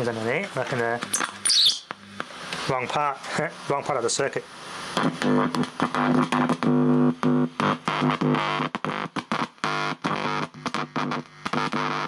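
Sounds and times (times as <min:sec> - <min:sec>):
loud amplified speaker buzz: 0:00.0 - 0:12.0.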